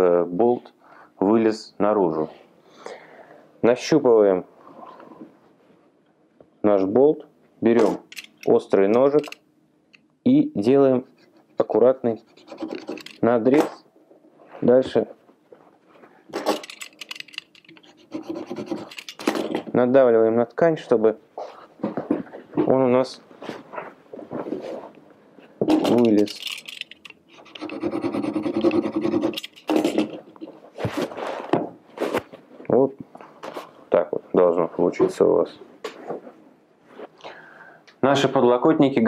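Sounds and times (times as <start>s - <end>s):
knife scratching fabric: 12.2s - 13.1s, 17.8s - 19.1s, 27.3s - 30.0s.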